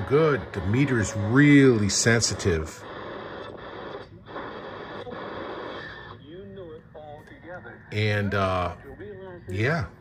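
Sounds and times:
radio static hiss: 0:00.0 - 0:10.0
faint voice on radio: 0:00.2 - 0:10.0.

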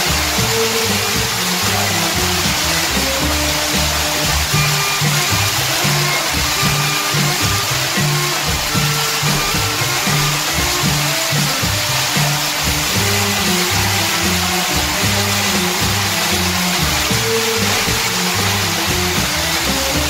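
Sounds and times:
background music with low notes: 0:00.0 - 0:20.0
water falling down rock: 0:00.0 - 0:20.0.

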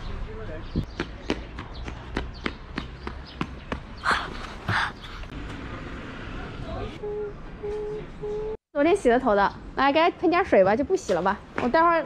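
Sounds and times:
footsteps on pavement: 0:00.8 - 0:04.8.

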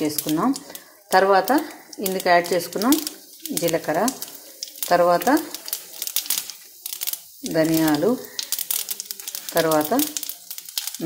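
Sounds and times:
lentils frying in hot oil: 0:00.0 - 0:11.0.

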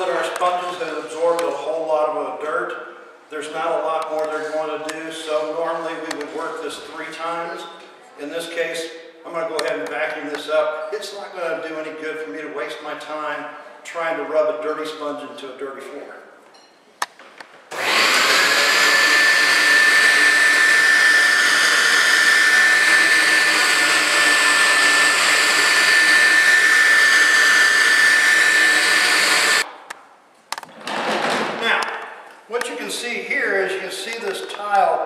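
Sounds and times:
vacuum cleaner motor whine: 0:17.7 - 0:29.6.

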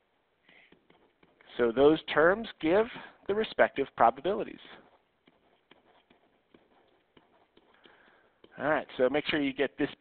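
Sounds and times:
stylus tapping on tablet: 0:00.4 - 0:01.5, 0:05.1 - 0:08.7.

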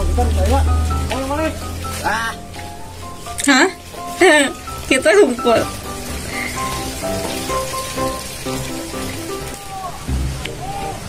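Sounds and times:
low bass line: 0:00.0 - 0:08.7, 0:10.1 - 0:10.6
background music melody: 0:00.0 - 0:11.0
steady hiss: 0:00.0 - 0:11.0.

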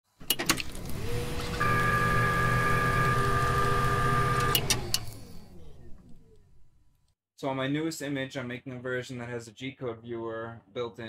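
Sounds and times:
mechanical whir with high whine: 0:00.8 - 0:06.6.

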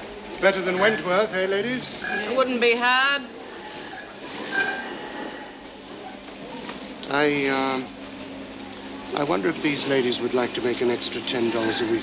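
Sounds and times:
industrial sewing machines running: 0:09.1 - 0:12.0.

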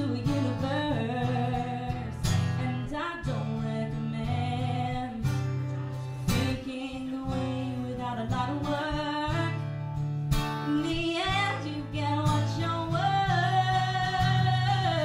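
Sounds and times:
acoustic guitar strumming: 0:00.0 - 0:15.0
woman singing: 0:00.0 - 0:15.0.

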